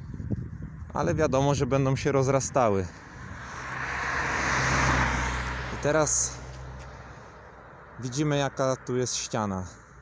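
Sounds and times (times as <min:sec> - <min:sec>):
car passing by: 0:03.0 - 0:08.0.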